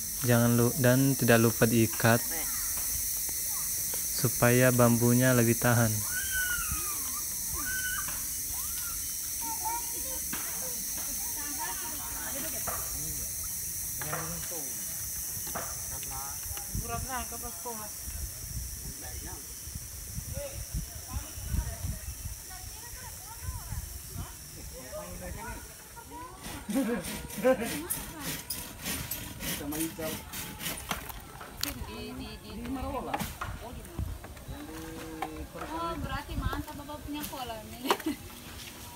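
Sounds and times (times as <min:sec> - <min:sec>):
steady hiss: 0:00.0 - 0:27.9
people talking in background: 0:00.2 - 0:38.9.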